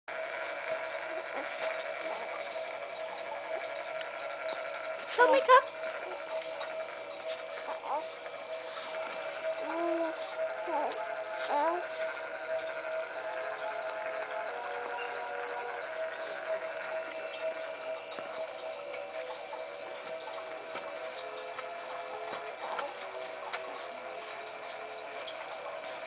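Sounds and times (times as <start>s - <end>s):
baby mobile tune: 0.1s - 26.0s
baby cooing: 1.1s - 2.4s, 7.6s - 8.2s, 9.4s - 12.0s.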